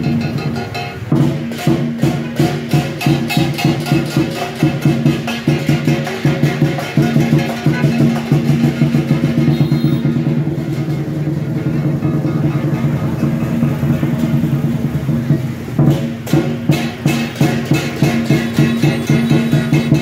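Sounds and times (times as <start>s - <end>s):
cymbals clashing: 0.0s - 20.0s
large drum rolls: 0.0s - 20.0s.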